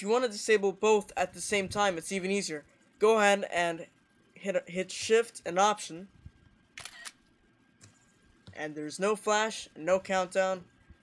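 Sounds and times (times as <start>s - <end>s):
camera shutter click: 6.8s - 7.2s.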